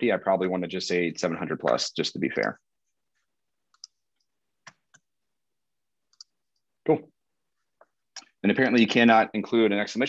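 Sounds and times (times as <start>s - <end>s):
computer keys clicking: 3.7s - 4.0s, 6.1s - 6.4s.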